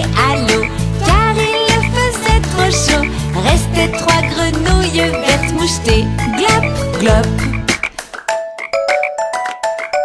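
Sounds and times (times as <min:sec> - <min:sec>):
bass line: 0:00.0 - 0:07.9
cartoon frog croaks: 0:06.3 - 0:10.0.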